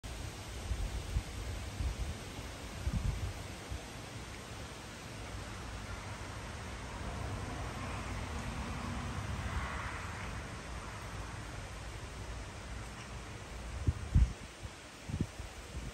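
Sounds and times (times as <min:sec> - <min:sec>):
wind hissing through trees: 0:00.0 - 0:15.9
wind buffeting microphone: 0:00.2 - 0:03.9, 0:12.7 - 0:15.9.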